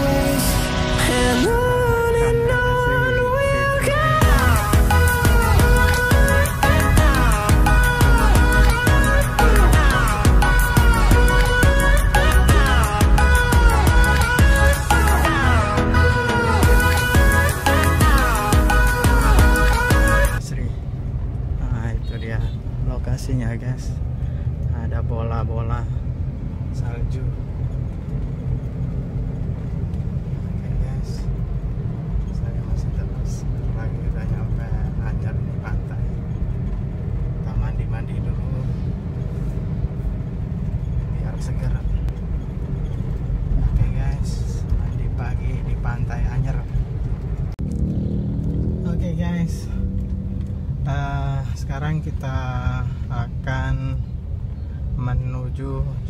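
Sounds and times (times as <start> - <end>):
car engine and road rumble: 0.0 - 56.0
indistinct voices: 3.9 - 20.7.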